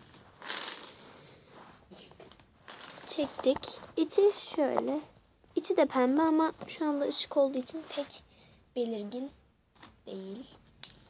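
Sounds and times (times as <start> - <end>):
pens scraping across soft surface: 0.0 - 4.9.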